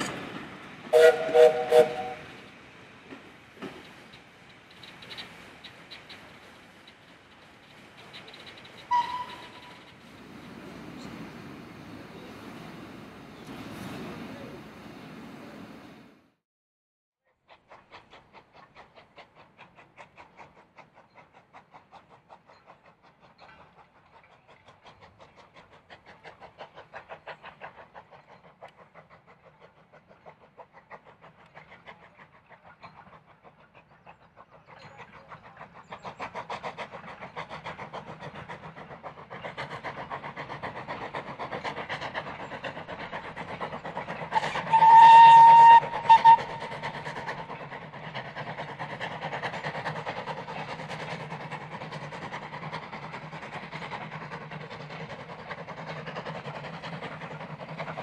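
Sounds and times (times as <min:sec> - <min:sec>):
steam locomotive exhaust chuffing: 0:00.0 - 0:16.1, 0:17.3 - 0:58.0
steam whistle blasts: 0:00.9 - 0:02.3, 0:08.9 - 0:09.7, 0:44.4 - 0:46.7.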